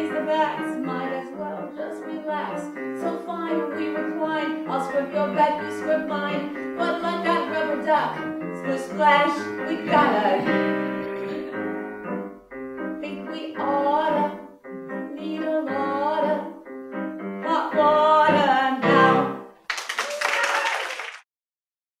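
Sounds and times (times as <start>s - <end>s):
woman singing with vibrato: 0.0s - 11.7s, 13.0s - 16.6s, 17.4s - 19.5s
audience applause: 19.7s - 21.3s.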